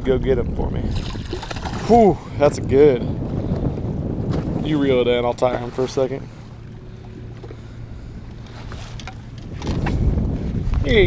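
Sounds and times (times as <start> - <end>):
low steady hum: 0.0 - 11.0
wind rumbling on microphone: 0.0 - 11.0.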